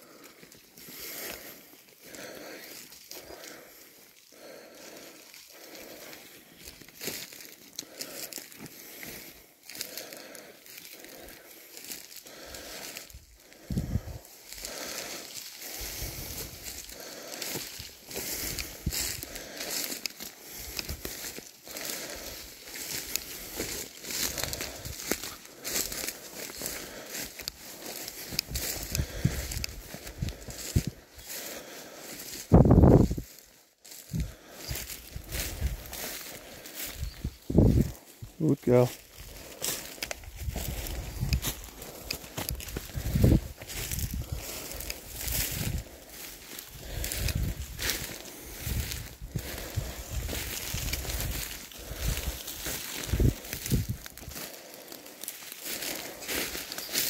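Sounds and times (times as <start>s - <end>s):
footsteps crunching through bracken: 0.0s - 57.0s.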